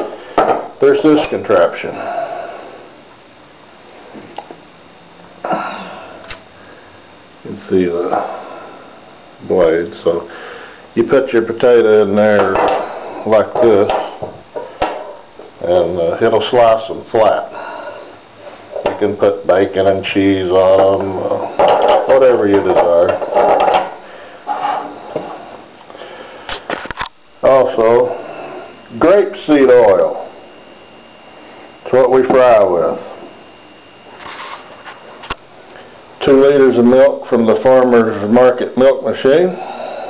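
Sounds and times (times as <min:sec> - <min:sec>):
faint room noise: 0:00.0 - 0:40.0.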